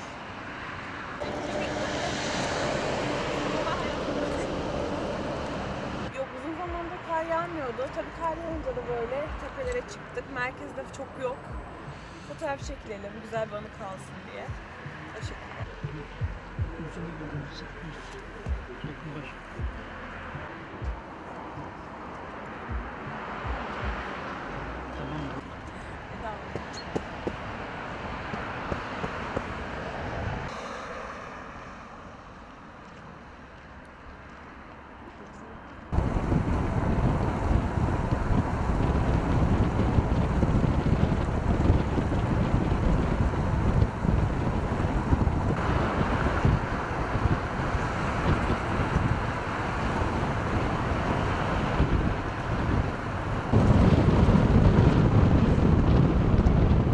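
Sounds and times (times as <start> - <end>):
outdoor noise: 0.0 - 56.9
wind buffeting microphone: 22.6 - 30.6, 35.9 - 56.9.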